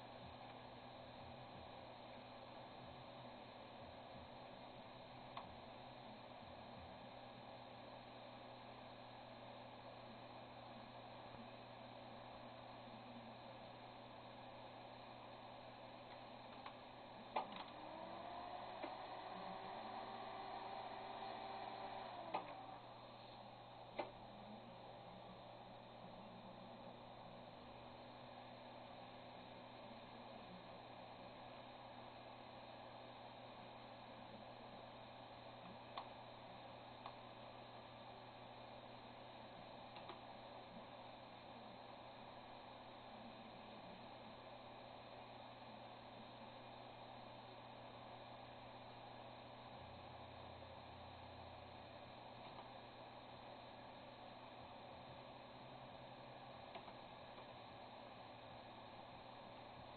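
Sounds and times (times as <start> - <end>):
hard drive hum and hiss: 0.0 - 59.9.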